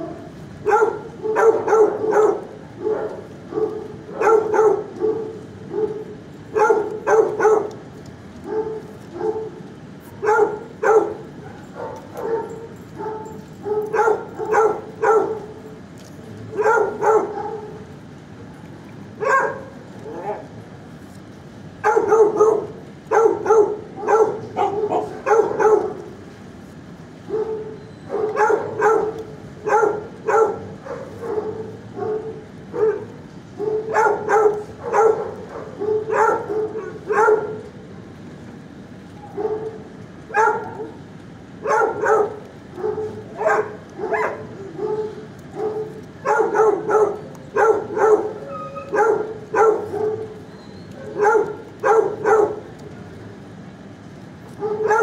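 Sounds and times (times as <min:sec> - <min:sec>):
dogs barking: 0:00.0 - 0:18.0, 0:19.1 - 0:20.5, 0:21.8 - 0:26.3, 0:27.2 - 0:37.8, 0:39.2 - 0:53.1, 0:54.5 - 0:55.0.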